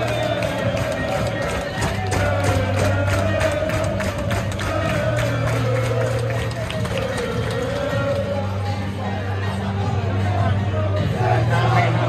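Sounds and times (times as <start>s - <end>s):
crowd noise: 0.0s - 12.0s
stadium music with held note: 0.0s - 12.0s.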